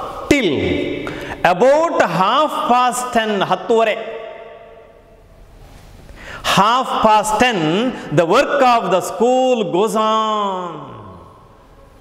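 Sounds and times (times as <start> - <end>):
man speaking: 0.0 - 4.3, 6.5 - 11.4.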